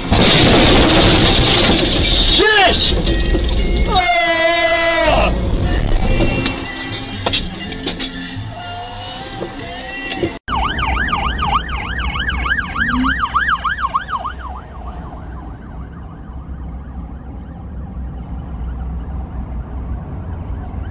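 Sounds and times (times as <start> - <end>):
car driving rumble: 10.3 - 20.9
police siren yelping: 10.5 - 20.9.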